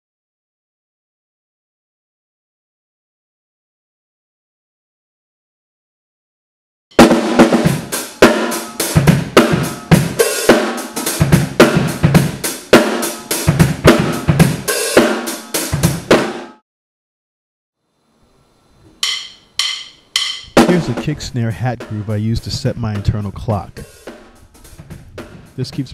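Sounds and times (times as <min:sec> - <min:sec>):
drum kit groove: 0:07.0 - 0:16.6, 0:19.0 - 0:25.9.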